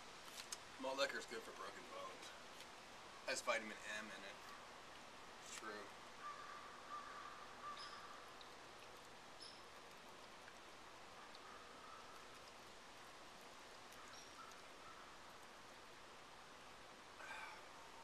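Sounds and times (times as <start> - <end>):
faint bird chirps: 6.2 - 8.6, 9.4 - 10.0, 11.2 - 12.8, 13.8 - 15.5.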